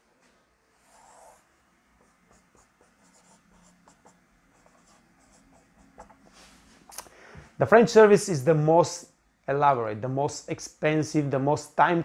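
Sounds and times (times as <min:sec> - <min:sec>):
marker writing on whiteboard: 0:02.0 - 0:06.3.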